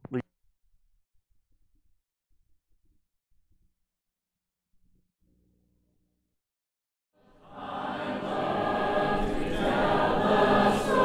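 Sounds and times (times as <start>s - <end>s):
choir singing: 7.2s - 11.0s.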